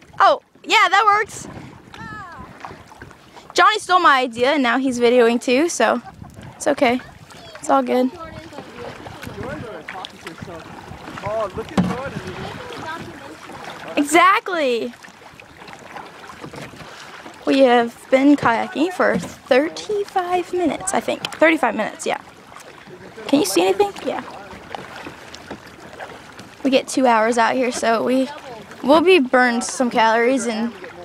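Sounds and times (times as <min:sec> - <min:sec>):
water sloshing around paddle: 0:00.0 - 0:31.0.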